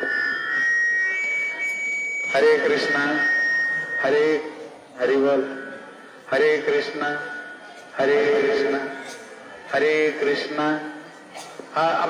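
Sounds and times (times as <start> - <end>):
microphone feedback whine: 0.0 - 8.8.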